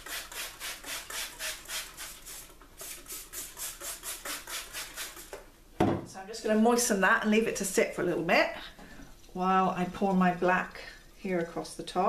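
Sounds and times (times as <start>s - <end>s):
spray bottle squirts hissing: 0.0s - 5.4s
bottle knocking down on surface: 5.8s - 6.1s.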